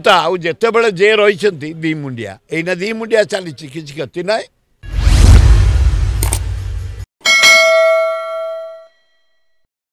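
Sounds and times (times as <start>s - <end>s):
bell ding ringing: 7.2s - 9.6s.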